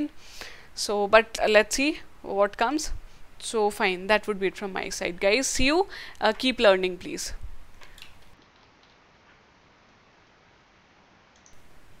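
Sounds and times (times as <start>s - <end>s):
room hiss: 5.2s - 12.0s
computer mouse clicks: 11.4s - 11.6s.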